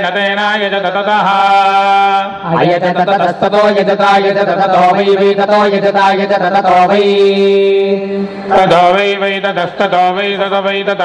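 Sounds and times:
men chanting verses: 0.2 - 10.7.

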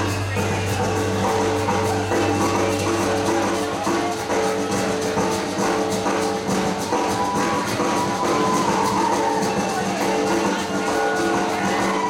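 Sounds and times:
live band playing: 0.0 - 12.0
ticking percussive rhythm: 0.0 - 12.0.

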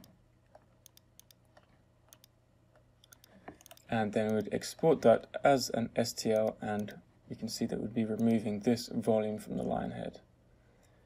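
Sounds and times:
mouse and keyboard clicks: 0.8 - 2.4, 3.0 - 4.6, 6.3 - 7.0, 8.1 - 8.5.

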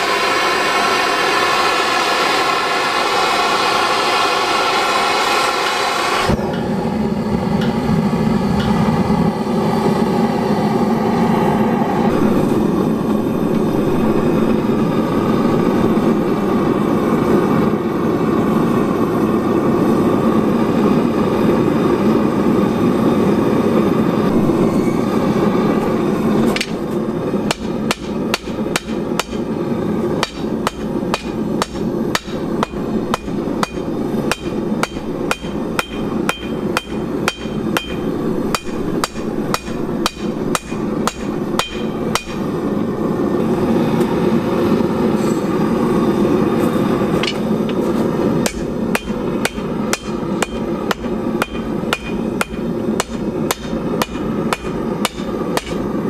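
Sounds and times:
gas forge burner running: 0.0 - 56.0
hammer striking steel on anvil: 26.5 - 29.6, 30.2 - 42.6, 47.2 - 56.0
anvil ringing: 30.2 - 42.6, 48.5 - 55.9.

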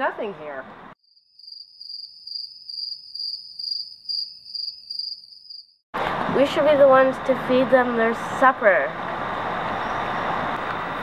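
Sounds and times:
cricket chirping trill: 1.0 - 5.8.

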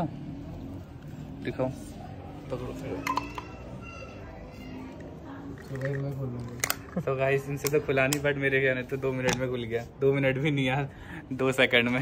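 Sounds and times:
plastic screw cap clicking: 5.6 - 7.0.

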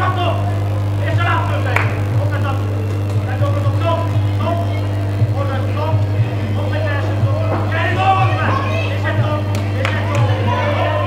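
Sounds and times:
steady low hum: 0.0 - 11.0
voices calling out and talking: 0.0 - 11.0.

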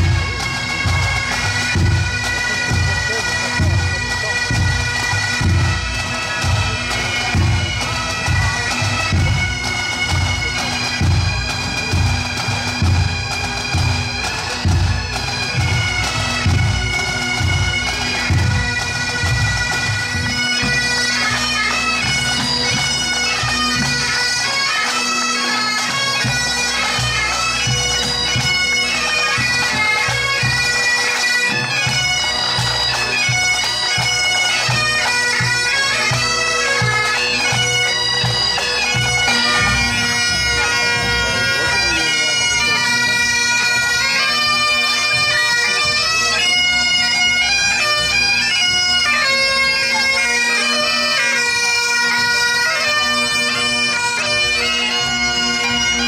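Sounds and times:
drums keeping a beat: 0.0 - 24.6, 25.8 - 50.8
bagpipes playing: 0.0 - 56.0.

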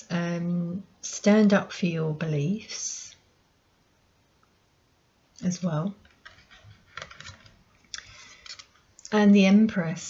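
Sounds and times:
cards rustling on table: 6.1 - 8.8.

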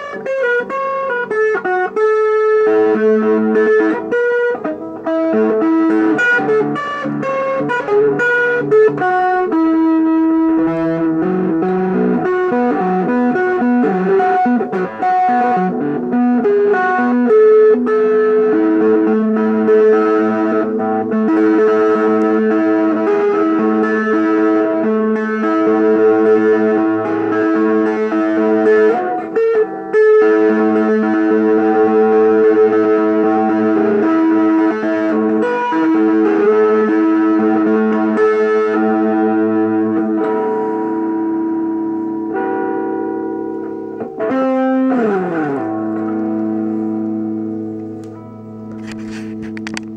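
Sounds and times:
electric guitar playing: 0.0 - 49.9.

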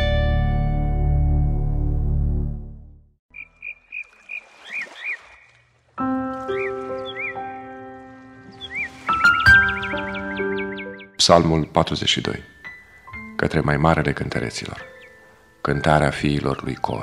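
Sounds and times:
soft keyboard chords: 6.0 - 17.0
chirping animal calls: 8.5 - 11.1.

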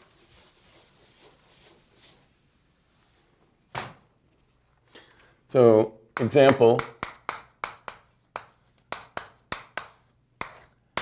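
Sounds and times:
writing scratching on a board: 0.0 - 2.3, 6.2 - 10.8.

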